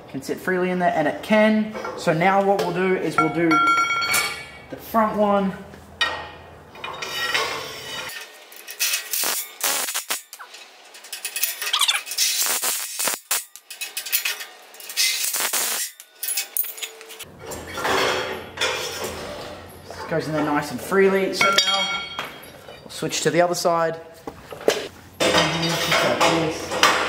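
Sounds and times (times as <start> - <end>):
metal bar clinking and scraping: 10.3 - 19.2.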